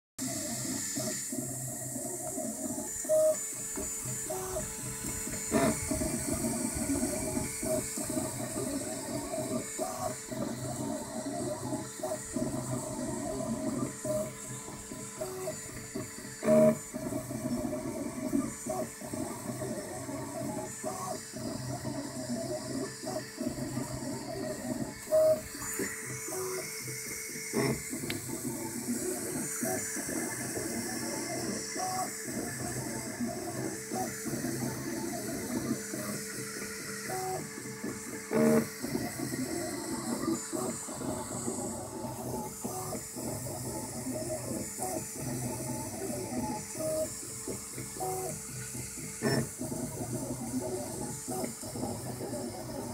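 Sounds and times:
stepper motors whining: 0.2s - 52.9s.

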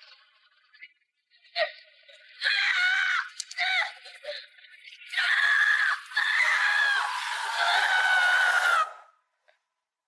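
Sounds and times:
boy screaming: 5.1s - 9.1s.

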